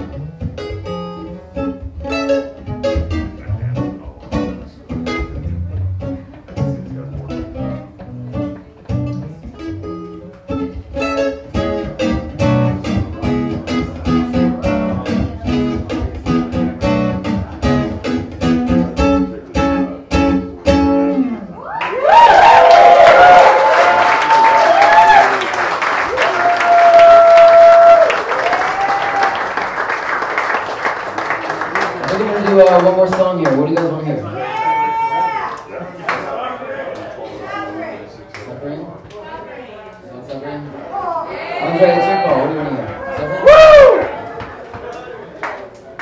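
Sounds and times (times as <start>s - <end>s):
acoustic guitar picking: 0.0s - 21.6s
audience applause and cheering: 21.6s - 33.6s, 42.1s - 46.0s.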